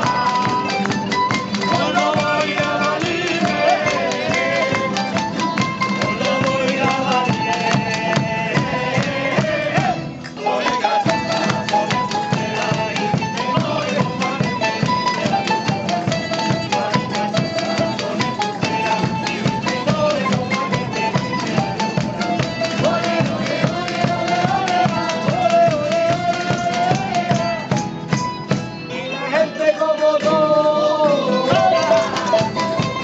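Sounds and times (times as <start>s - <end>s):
steady drum beat: 0.0s - 28.8s
folk band playing: 0.0s - 33.0s
plucked lute-type instrument: 0.0s - 33.0s
strummed acoustic guitars: 0.0s - 33.0s.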